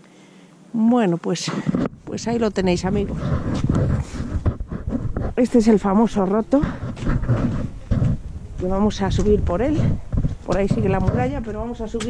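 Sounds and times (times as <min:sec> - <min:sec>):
wind buffeting microphone: 0:01.6 - 0:12.0.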